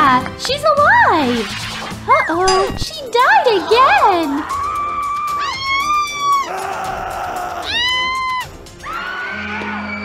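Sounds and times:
background music: 0.0 - 10.0
high-pitched wailing cries: 3.6 - 10.0.

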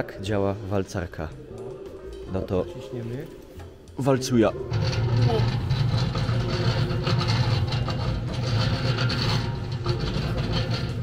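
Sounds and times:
rolling mill hum with clatter: 4.7 - 11.0.

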